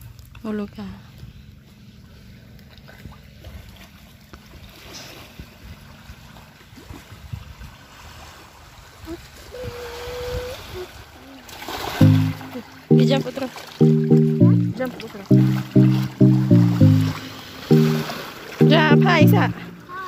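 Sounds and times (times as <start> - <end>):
sea water lapping at shore: 0.1 - 20.0.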